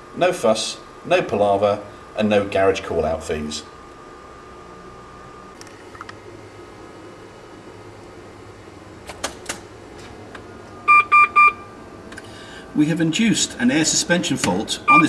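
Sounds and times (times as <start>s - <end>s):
low steady hum: 0.0s - 15.0s
short electronic beeps: 10.9s - 11.6s.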